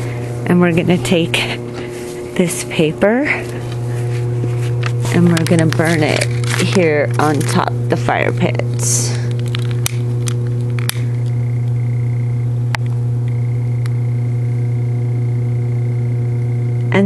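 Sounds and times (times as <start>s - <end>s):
steady low hum: 0.0s - 17.0s.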